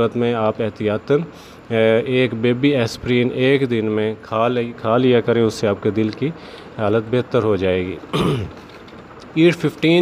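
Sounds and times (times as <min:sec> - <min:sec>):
man clearing his throat: 0:08.1 - 0:08.6.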